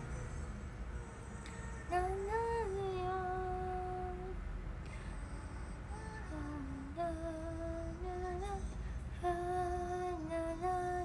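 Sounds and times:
woman humming slow tune: 0:01.3 - 0:11.0.

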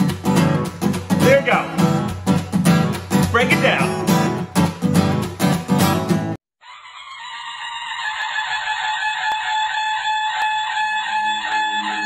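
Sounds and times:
acoustic guitar strumming: 0:00.0 - 0:06.4.

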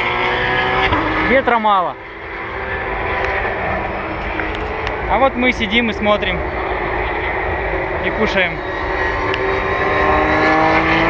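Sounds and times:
distant engine drone: 0:00.0 - 0:11.0.

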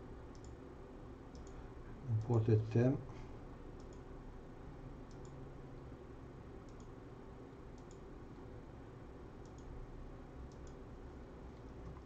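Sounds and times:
computer mouse clicks: 0:00.3 - 0:00.6, 0:01.3 - 0:01.6, 0:03.8 - 0:04.1, 0:05.0 - 0:05.4, 0:06.6 - 0:07.0, 0:07.7 - 0:08.1, 0:09.4 - 0:09.7, 0:10.4 - 0:10.8.

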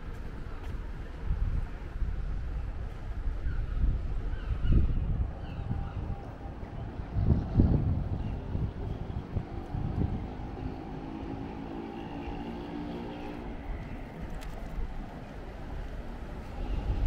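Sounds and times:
wind buffeting microphone: 0:00.0 - 0:17.0
engine hum: 0:05.6 - 0:17.0.

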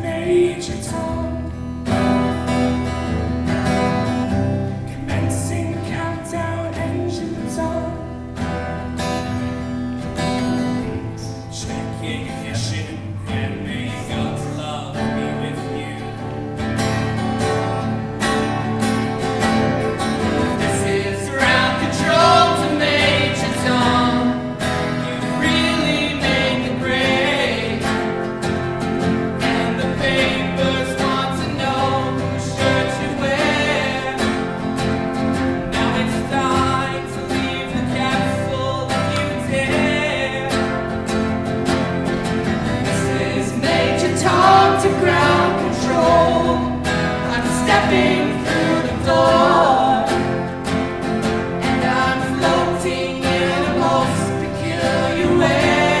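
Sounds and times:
people singing: 0:00.0 - 0:02.2, 0:04.8 - 0:08.5, 0:10.4 - 0:41.3, 0:42.2 - 0:56.0
acoustic guitars playing: 0:00.0 - 0:56.0.

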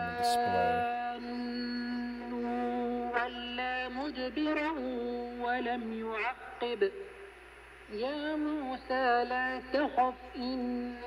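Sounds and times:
chant-like music over radio speaker: 0:00.0 - 0:11.0.

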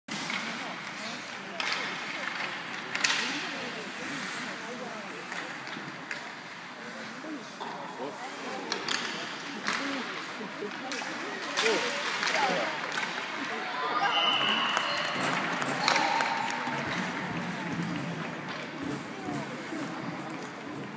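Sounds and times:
steady rink noise: 0:00.1 - 0:20.9
hockey sticks and puck knocking: 0:08.7 - 0:13.5, 0:14.5 - 0:20.9.

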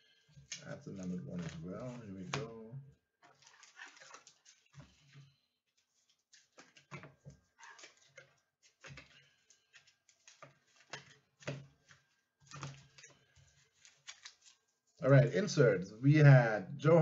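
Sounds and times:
plastic-sleeved cards clicking: 0:00.4 - 0:02.6, 0:06.0 - 0:14.8.

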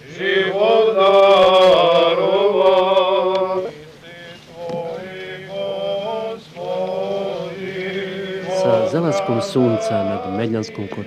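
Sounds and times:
men chanting: 0:00.0 - 0:11.0.

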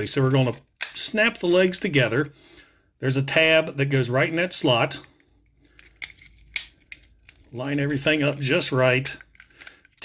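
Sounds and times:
plastic toy parts clicking: 0:05.6 - 0:07.5, 0:08.3 - 0:10.0.

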